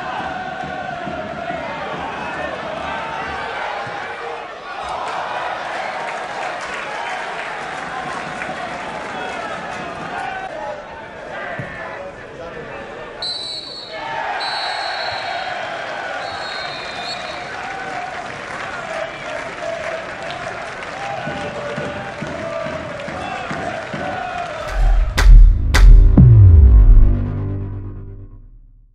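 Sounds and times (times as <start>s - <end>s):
referee's whistle blasts: 13.2s - 15.4s
deep bass drone: 24.6s - 28.9s
falling electronic tone: 24.7s - 28.9s.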